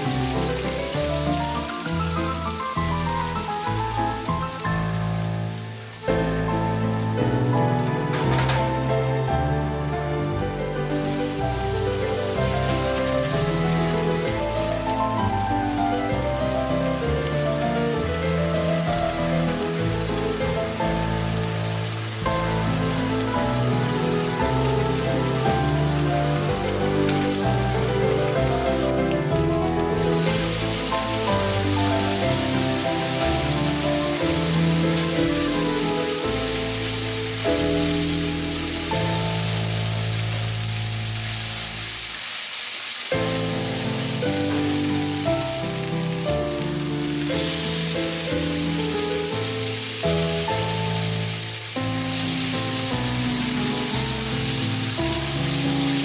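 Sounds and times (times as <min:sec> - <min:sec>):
background music: 0:00.0 - 0:42.2, 0:43.2 - 0:56.0
onion sizzling in hot oil: 0:00.0 - 0:56.0.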